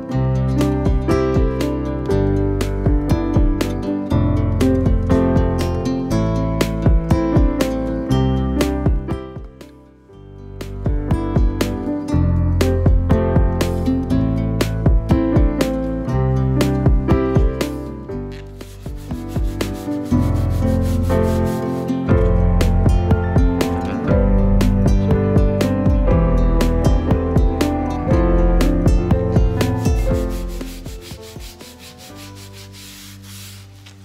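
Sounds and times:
background music with guitar: 0.0s - 34.0s
sponge scrubbing floor grout: 18.4s - 22.1s, 29.6s - 34.0s.

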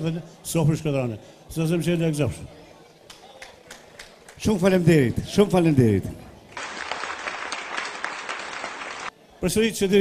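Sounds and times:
audience applauding: 6.6s - 9.1s.

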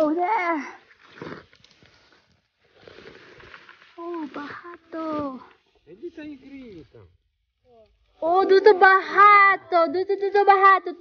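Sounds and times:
rustling through undergrowth: 0.9s - 6.6s.

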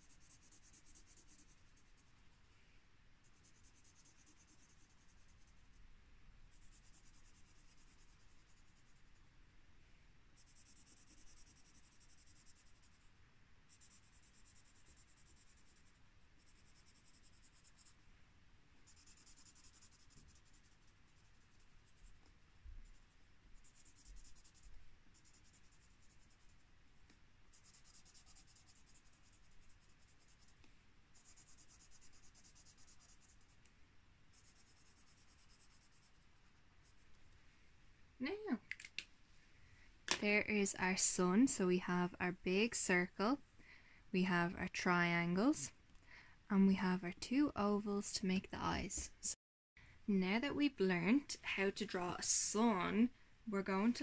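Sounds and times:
marker scratching on paper: 0.0s - 2.2s, 3.2s - 5.8s, 6.5s - 9.2s, 10.4s - 13.1s, 13.7s - 18.0s, 18.8s - 26.7s, 27.5s - 33.6s, 34.3s - 37.1s.

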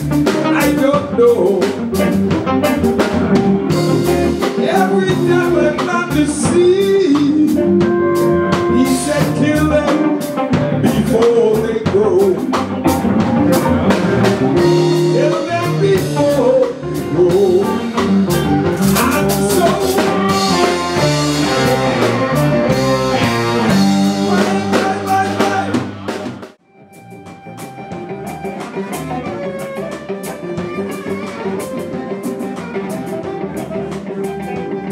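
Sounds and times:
live blues band playing: 0.0s - 34.9s.

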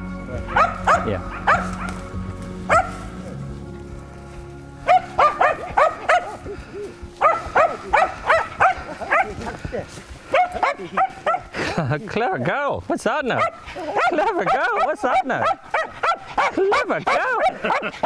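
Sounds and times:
dog barking in high yaps: 0.5s - 2.0s, 2.7s - 3.1s, 4.9s - 6.4s, 7.2s - 9.3s, 10.3s - 11.5s, 13.4s - 17.9s.

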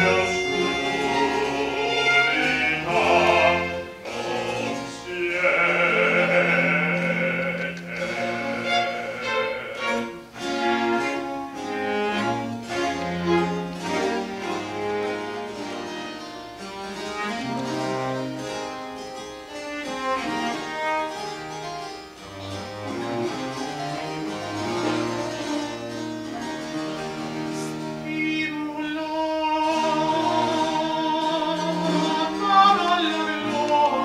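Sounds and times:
harpsichord: 0.0s - 28.4s
cello: 0.0s - 34.0s
plucked lute: 0.0s - 34.0s
violins: 0.0s - 34.0s.

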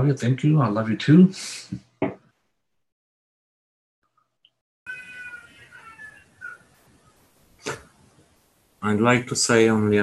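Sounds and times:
high wavering cry: 4.9s - 6.9s
microphone hiss: 4.9s - 10.0s.

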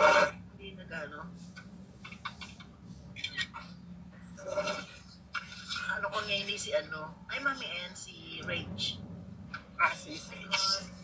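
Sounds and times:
woman speaking: 0.0s - 1.4s, 5.7s - 9.0s, 9.8s - 11.0s
steady low hum: 0.0s - 11.0s.

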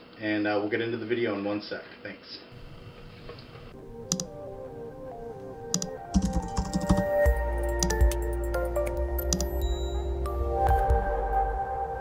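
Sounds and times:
soft background music: 3.7s - 12.0s.

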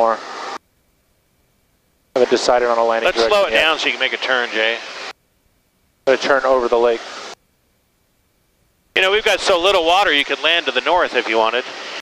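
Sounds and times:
faint headset intercom hiss: 2.1s - 5.2s.

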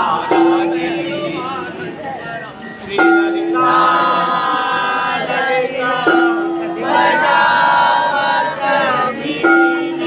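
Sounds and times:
group singing devotional song: 0.0s - 2.0s, 2.8s - 10.0s
small bells ringing: 0.0s - 10.0s.

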